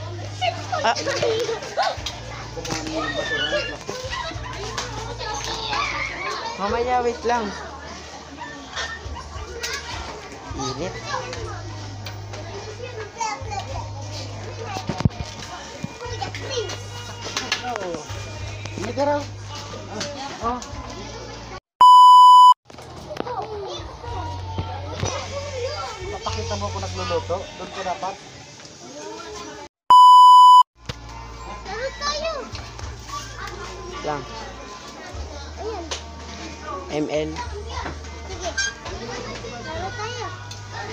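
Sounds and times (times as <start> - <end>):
chatter of voices: 0.0 - 21.6, 22.9 - 29.7, 31.0 - 40.9
pure test tone beep: 21.8 - 22.6, 29.9 - 30.7.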